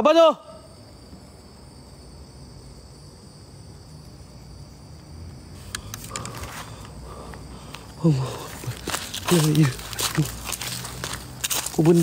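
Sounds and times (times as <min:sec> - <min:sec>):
night insects chorus: 0:00.0 - 0:12.0
clicks: 0:05.6 - 0:06.5
rustling through dry leaves: 0:08.2 - 0:12.0.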